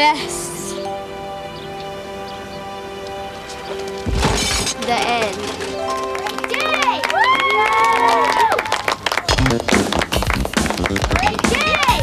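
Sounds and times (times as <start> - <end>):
background music: 0.0 - 12.0
loud crash: 4.1 - 5.0.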